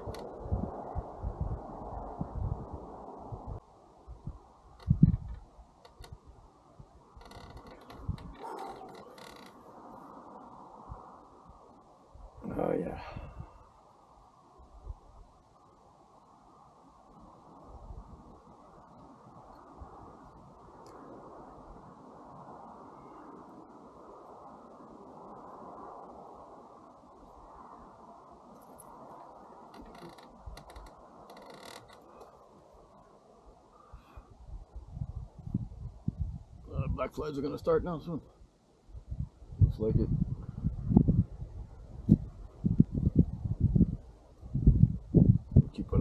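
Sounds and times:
faint wind blowing: 0.0 - 46.0.

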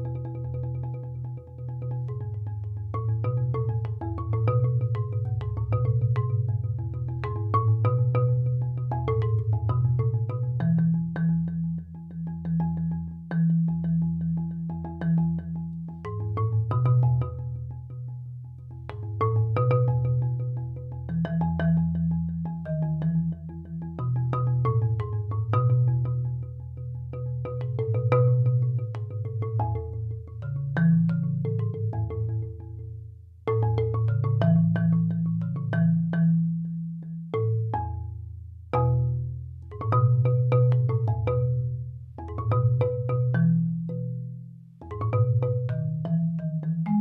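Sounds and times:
slow mellow marimba piece: 0.0 - 47.0.

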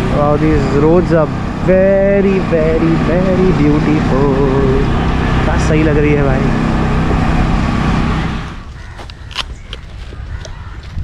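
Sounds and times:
wind rushing over microphone: 0.0 - 8.8
scooter engine hum: 0.0 - 11.0.

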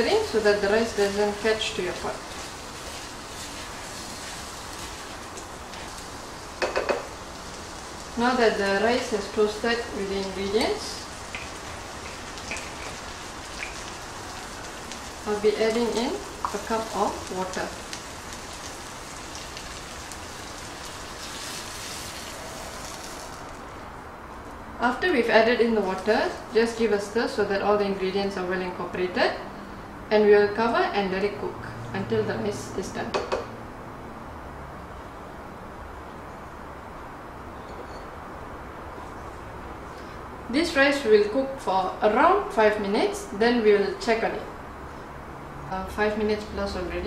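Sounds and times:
rice sizzling in a pot: 0.0 - 23.9
grains scraping and shifting: 0.4 - 6.6, 7.2 - 23.7.

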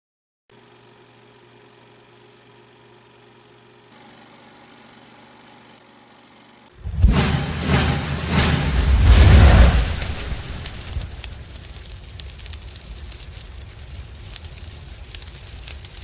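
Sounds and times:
film projector humming: 0.5 - 6.8
loud deep sound: 6.8 - 11.6.

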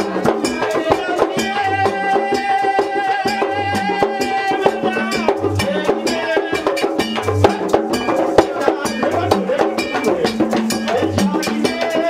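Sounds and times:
clanking bell beat: 0.0 - 12.0
drums: 0.0 - 12.0
voices singing: 0.0 - 12.0.

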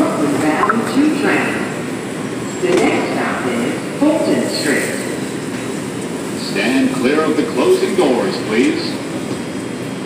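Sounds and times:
subway train humming and hissing: 0.0 - 10.0.

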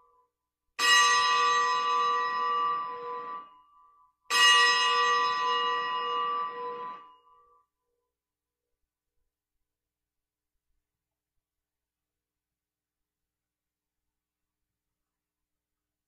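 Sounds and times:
church bell ringing: 0.8 - 3.6, 4.3 - 7.2.

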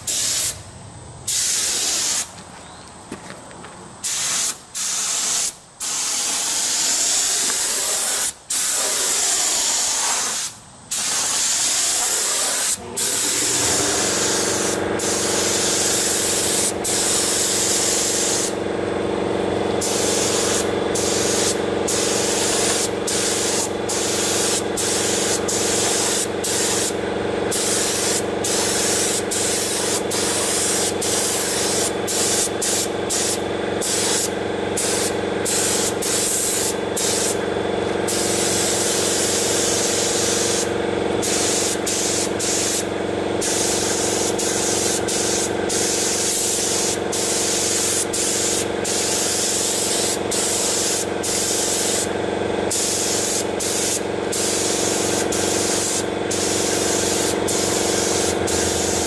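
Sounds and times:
paint spray gun hissing: 0.0 - 0.7, 1.3 - 2.4, 4.0 - 59.0
steady hum: 12.5 - 48.7, 50.2 - 59.0.

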